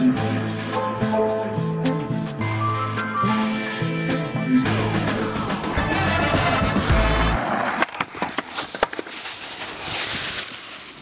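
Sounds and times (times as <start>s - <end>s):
music playing: 0.0s - 7.7s
skateboard clattering: 5.8s - 9.8s.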